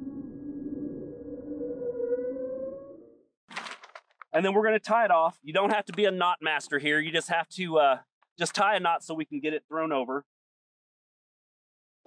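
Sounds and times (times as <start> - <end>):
eerie synthesized tones: 0.0 - 3.3.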